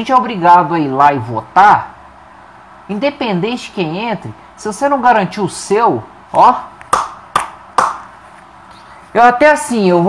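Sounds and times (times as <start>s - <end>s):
hand slaps: 6.8s - 8.2s.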